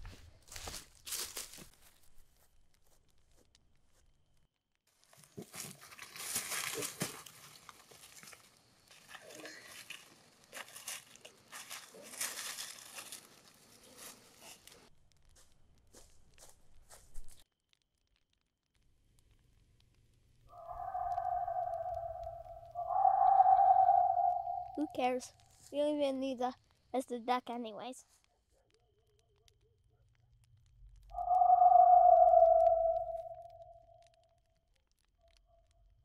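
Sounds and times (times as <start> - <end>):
cards and dry litter rustling: 5.0 - 14.8.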